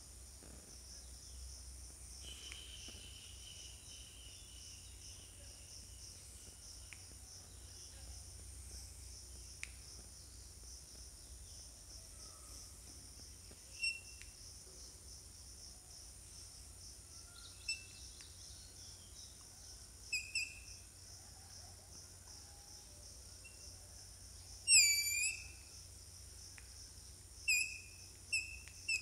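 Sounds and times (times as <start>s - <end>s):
insects droning: 0.0s - 29.0s
bird chirping: 24.7s - 25.7s, 27.5s - 29.0s.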